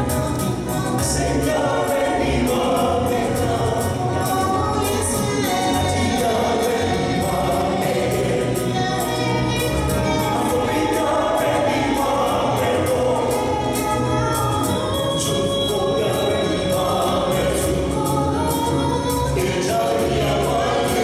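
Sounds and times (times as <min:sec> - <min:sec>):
group singing gospel: 0:00.0 - 0:21.0.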